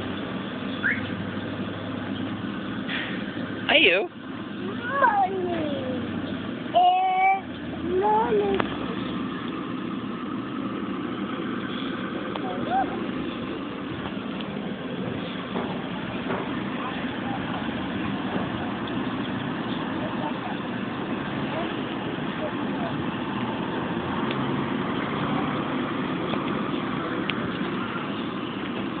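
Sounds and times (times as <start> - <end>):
city street traffic: 0.0 - 29.0
child's high voice calling: 4.6 - 6.1, 6.7 - 8.6.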